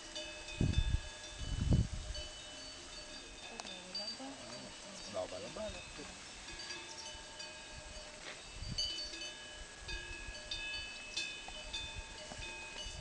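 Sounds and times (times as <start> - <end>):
bells ringing: 0.0 - 13.0.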